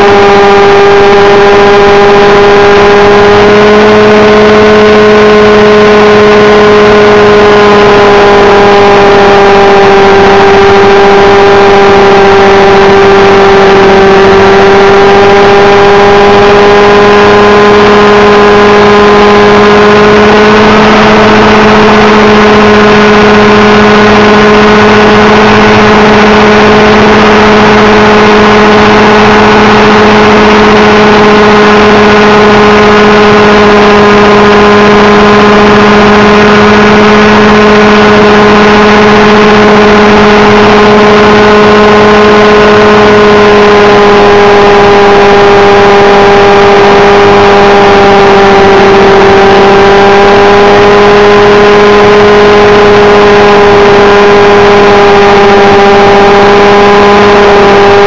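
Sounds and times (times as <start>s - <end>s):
model helicopter engine and rotor: 0.0s - 58.0s.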